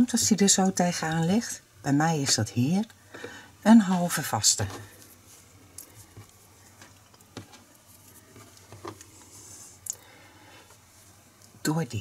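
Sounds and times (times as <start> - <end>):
soft yarn rustling: 3.6 - 9.8, 10.5 - 12.0.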